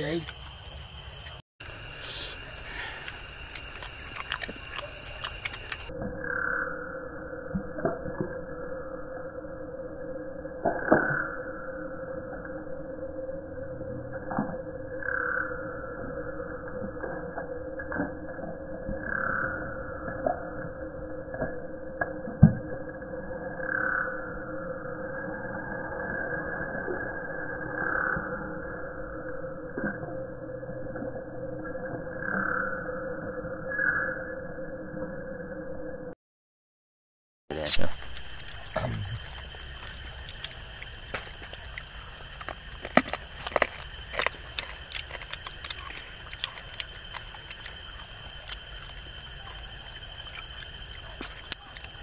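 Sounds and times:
frogs calling: 0.0s - 7.5s, 14.5s - 16.7s, 37.5s - 52.0s
crickets trilling: 0.0s - 36.0s, 37.5s - 52.0s.

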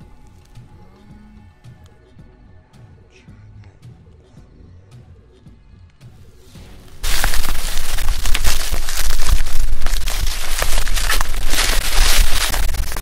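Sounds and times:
tyres crunching leaves and sticks: 6.6s - 13.0s.

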